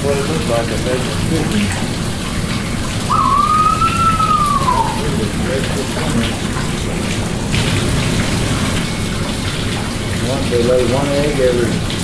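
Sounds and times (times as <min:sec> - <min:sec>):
running water rushing: 0:00.0 - 0:12.0
flamingo call: 0:03.1 - 0:05.2.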